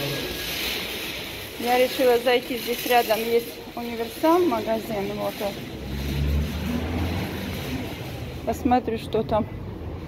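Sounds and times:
street hiss: 0.0 - 9.1
vehicle engine rumble: 0.0 - 10.0.

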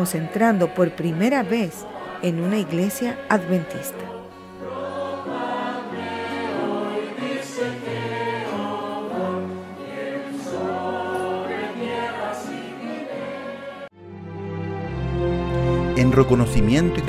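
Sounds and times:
choir singing slow held notes: 0.0 - 16.0.

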